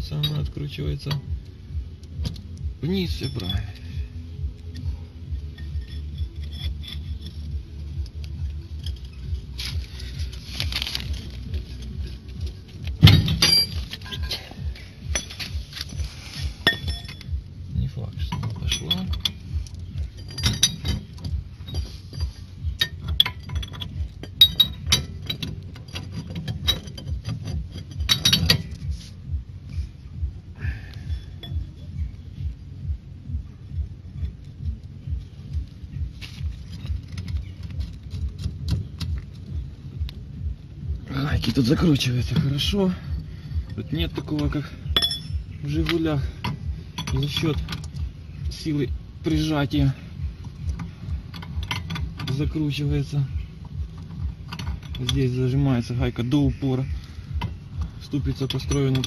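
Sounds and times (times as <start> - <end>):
low pulsing hum: 0.0 - 59.0
spanner clinking on metal nut: 2.0 - 4.0, 4.7 - 10.4, 11.4 - 16.0, 16.6 - 17.4, 18.2 - 28.9, 31.1 - 32.0, 41.4 - 48.1, 50.4 - 52.8, 53.6 - 56.0, 57.3 - 59.0.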